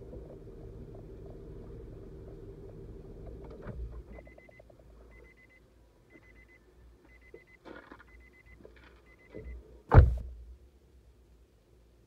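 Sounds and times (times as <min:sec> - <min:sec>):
car engine idling: 0:00.0 - 0:05.0
car warning chime beeping: 0:04.0 - 0:09.6.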